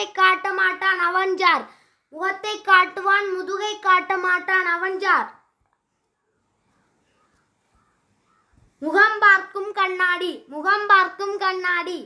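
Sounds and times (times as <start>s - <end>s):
child speaking: 0.0s - 5.6s, 8.8s - 12.0s.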